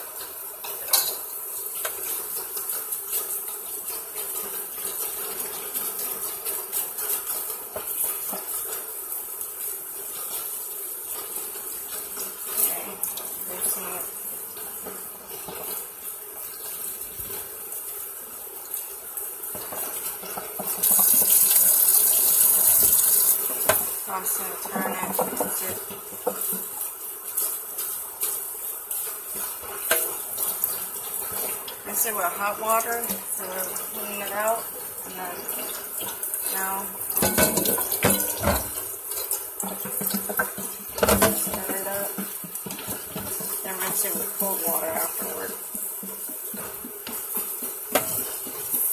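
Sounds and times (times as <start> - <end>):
faucet water running into sink: 0.0 - 48.9.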